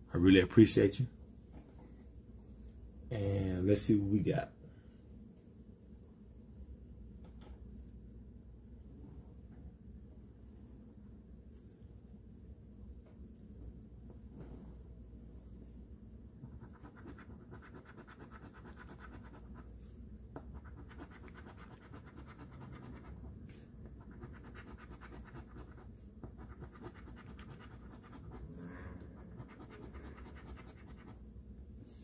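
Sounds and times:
coin scratching lottery ticket: 0:16.6 - 0:19.6, 0:20.6 - 0:23.2, 0:24.0 - 0:25.8, 0:26.4 - 0:28.4, 0:29.2 - 0:31.2.

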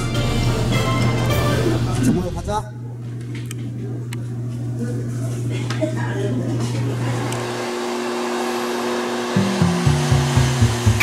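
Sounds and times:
background music with bass line: 0:00.0 - 0:02.6, 0:09.4 - 0:11.0
blower whooshing air: 0:06.8 - 0:11.0.

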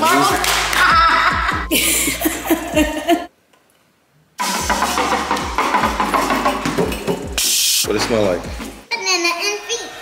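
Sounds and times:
music with a drum beat: 0:04.4 - 0:08.8.

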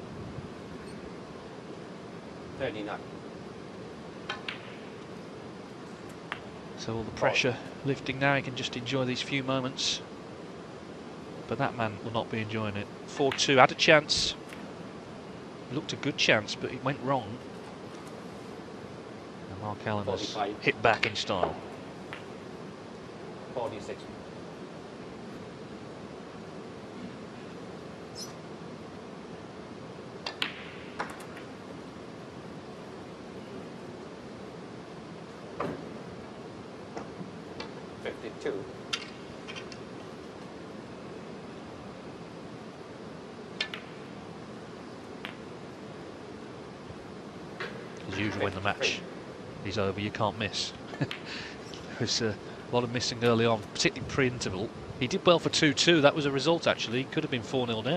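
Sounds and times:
arena hum: 0:00.0 - 0:57.9
snooker balls clicking: 0:04.3 - 0:04.8, 0:20.9 - 0:22.3, 0:30.2 - 0:31.5, 0:43.6 - 0:44.1, 0:45.2 - 0:45.5, 0:51.1 - 0:51.8
cue tip striking cue ball: 0:30.2 - 0:31.2.

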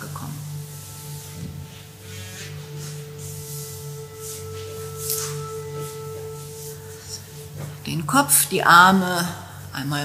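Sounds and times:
low sustained drone: 0:00.0 - 0:10.0.

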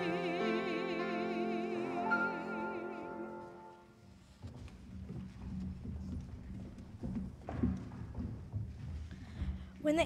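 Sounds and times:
children's footsteps on stage floor: 0:03.7 - 0:10.0.

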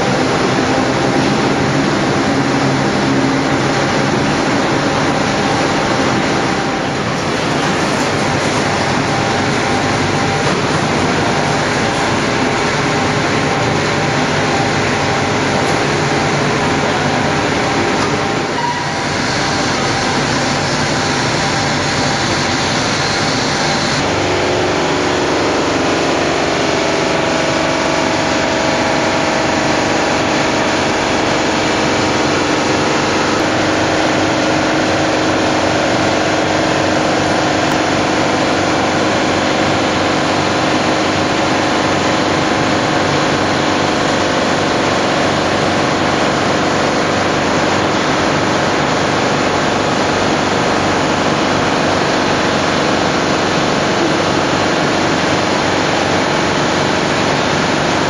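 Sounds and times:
casting machine mechanical drone: 0:00.0 - 0:58.0.

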